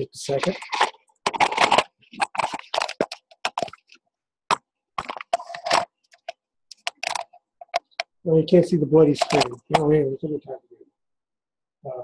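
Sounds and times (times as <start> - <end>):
camcorder handling rustles and knocks: 0.4 - 8.1.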